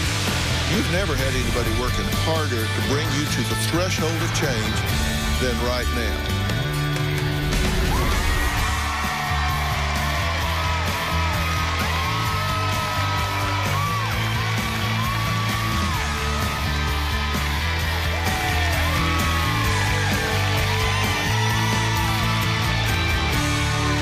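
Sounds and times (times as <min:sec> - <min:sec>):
upbeat music with heavy bass: 0:00.0 - 0:24.0
audience clapping: 0:06.5 - 0:24.0
audience cheering and whooping: 0:07.2 - 0:24.0.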